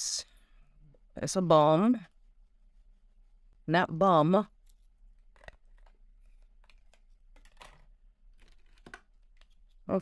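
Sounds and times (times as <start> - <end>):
soft rustle: 2.0 - 3.6.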